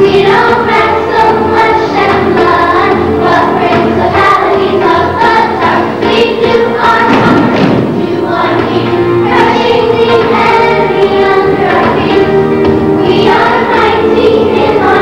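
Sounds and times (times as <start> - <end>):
children and adults singing: 0.0 - 15.0
musical accompaniment: 0.0 - 15.0.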